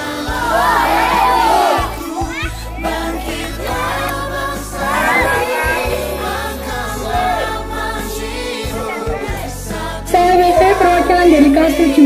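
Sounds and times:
backing music: 0:00.0 - 0:12.0
children singing together: 0:00.0 - 0:12.0
scattered children's voices: 0:00.8 - 0:09.8.

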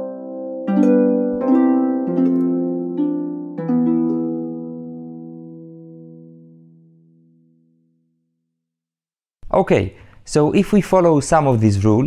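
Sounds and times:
plucked string chord ringing: 0:00.0 - 0:08.3.

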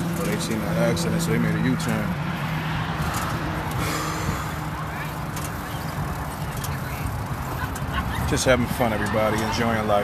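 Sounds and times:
road traffic rumble: 0:00.0 - 0:10.0
faint voices: 0:04.0 - 0:10.0.

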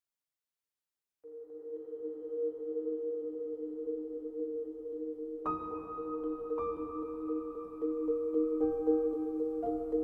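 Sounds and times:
ambient drone music: 0:01.3 - 0:10.0.

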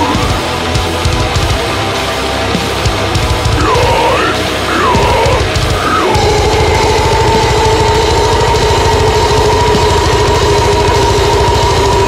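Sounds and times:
fast low drumming: 0:00.0 - 0:12.0.

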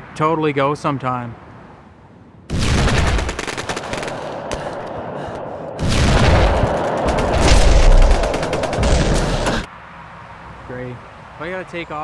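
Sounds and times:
rapid automatic gunfire: 0:02.6 - 0:04.7, 0:05.8 - 0:09.7.

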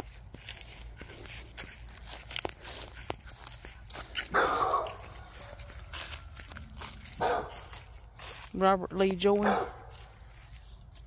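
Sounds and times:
footsteps through dry leaves: 0:00.0 - 0:11.0
dog barking: 0:04.3 - 0:05.5, 0:07.2 - 0:07.7, 0:09.4 - 0:09.9.

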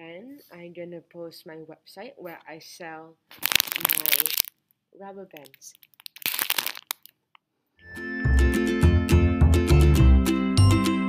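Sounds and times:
music: 0:07.8 - 0:11.0.

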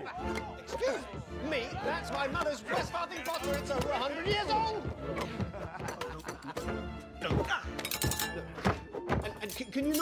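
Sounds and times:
film score music: 0:00.0 - 0:10.0
plates clattering: 0:07.8 - 0:10.0.

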